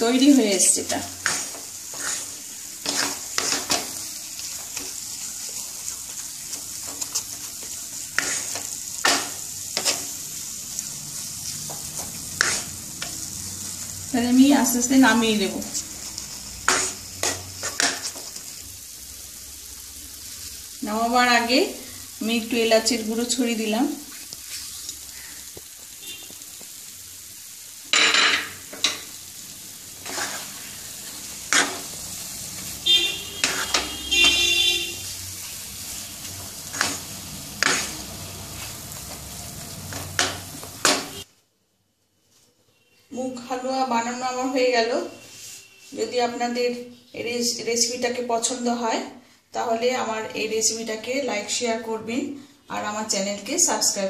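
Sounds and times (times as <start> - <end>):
food sizzling in a pan: 0.0 - 41.3, 43.1 - 54.0
wooden spatula scraping a pan: 0.2 - 10.2, 11.4 - 13.2, 16.6 - 18.6, 30.0 - 41.2, 45.1 - 46.2.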